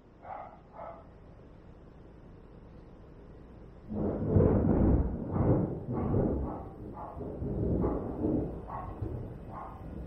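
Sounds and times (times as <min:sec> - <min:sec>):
dog barking: 0:00.2 - 0:01.1, 0:06.0 - 0:08.0, 0:08.6 - 0:10.0.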